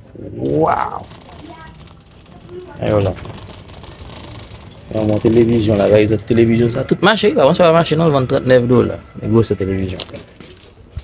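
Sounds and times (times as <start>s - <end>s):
metal shopping cart rattling: 0.6s - 11.0s.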